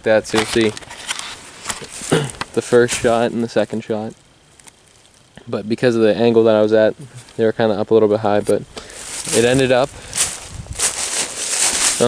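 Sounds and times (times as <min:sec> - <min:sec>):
dry leaves crunching underfoot: 0:00.3 - 0:03.8, 0:08.5 - 0:12.0.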